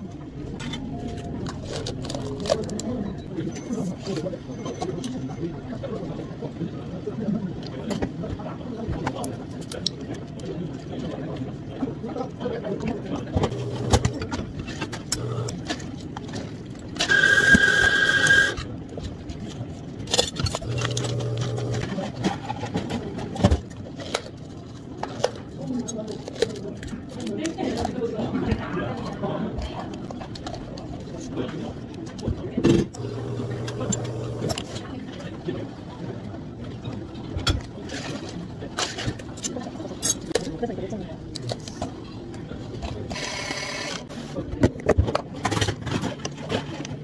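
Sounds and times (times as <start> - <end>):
mechanical hum: 0.0 - 7.3, 13.0 - 47.0
small motor whirring: 33.0 - 34.7.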